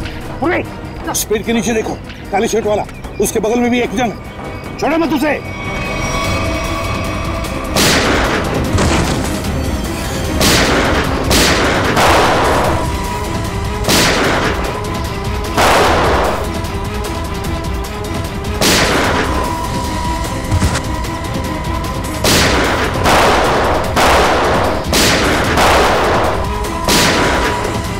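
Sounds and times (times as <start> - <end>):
tense background music: 0.0 - 27.9
gunshots with echoing tail: 7.6 - 9.5, 10.2 - 16.8, 18.5 - 19.6, 21.8 - 27.9.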